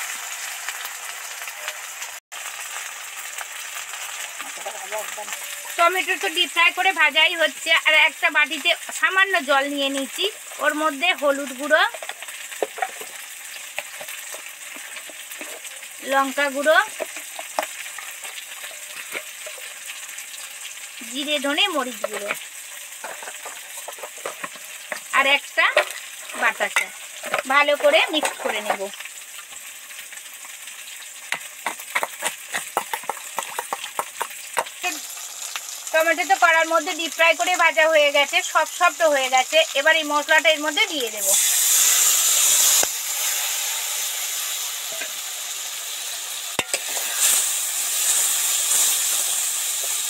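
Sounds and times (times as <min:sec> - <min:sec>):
food deep-frying in hot oil: 0:00.0 - 0:50.0
oil popping and crackling: 0:00.0 - 0:50.0.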